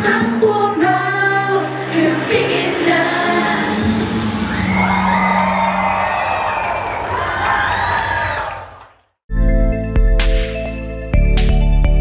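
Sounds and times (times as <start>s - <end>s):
live pop song: 0.0s - 4.5s
crowd cheering: 1.7s - 9.2s
electronic music with heavy bass: 9.3s - 12.0s.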